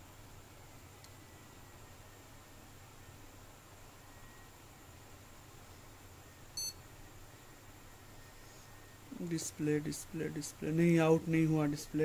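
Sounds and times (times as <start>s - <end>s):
faint steady hum: 0.0s - 12.0s
short high-pitched beep: 6.6s - 6.8s.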